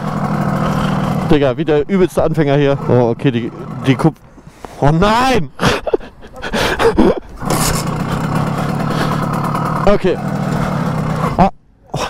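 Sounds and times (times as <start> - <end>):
moped engine kick-started: 0.0 - 4.1, 6.9 - 11.5.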